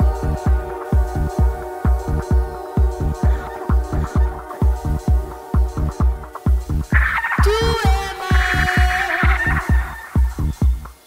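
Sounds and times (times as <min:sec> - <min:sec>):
held synth tone: 0:00.0 - 0:10.9
electronic music with kick drum: 0:00.0 - 0:11.0.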